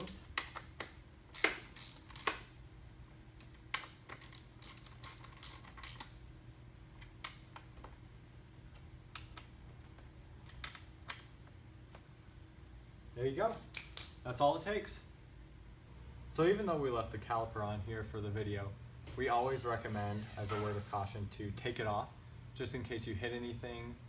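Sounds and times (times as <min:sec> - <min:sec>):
hand tool tightening bolts: 0:00.0 - 0:02.4, 0:03.7 - 0:06.1
small metallic clicks: 0:03.4 - 0:06.2.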